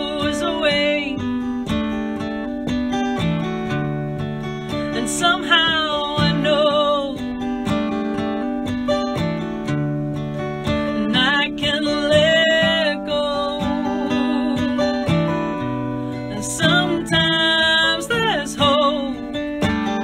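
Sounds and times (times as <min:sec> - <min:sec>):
strummed acoustic guitar: 0:00.0 - 0:20.0.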